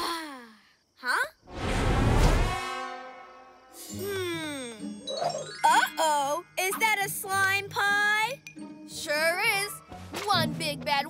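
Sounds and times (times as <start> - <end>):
loud whooshing hit: 1.5 - 3.7.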